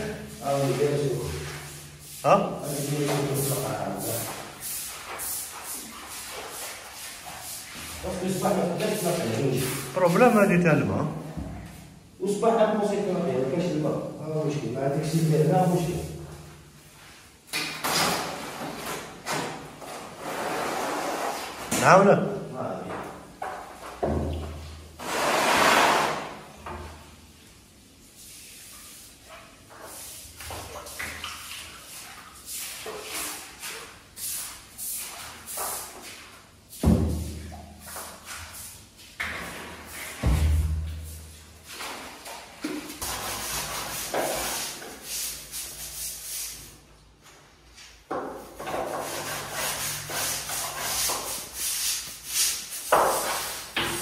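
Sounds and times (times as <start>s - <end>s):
broom bristles swishing on tiles: 0.0s - 10.5s, 27.4s - 40.3s, 40.9s - 46.8s, 47.7s - 54.0s.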